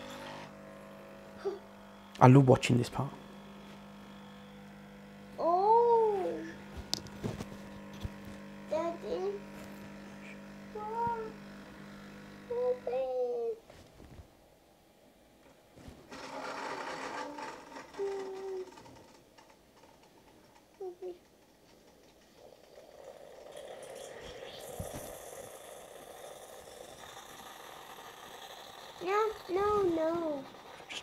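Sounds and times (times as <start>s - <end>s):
coffee machine pump humming: 0.0s - 13.2s, 16.1s - 31.0s
child babbling: 1.4s - 1.6s, 5.4s - 6.6s, 8.7s - 9.4s, 10.8s - 11.4s, 12.5s - 13.6s, 17.4s - 18.8s, 20.8s - 21.2s, 29.0s - 30.5s.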